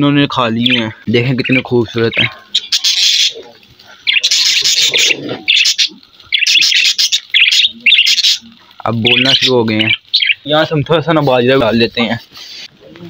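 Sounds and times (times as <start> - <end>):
budgerigars chirping: 0.5 - 10.8.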